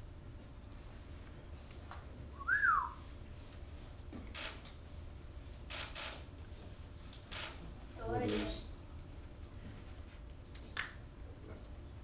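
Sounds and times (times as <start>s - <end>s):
person whistling: 2.4s - 3.0s.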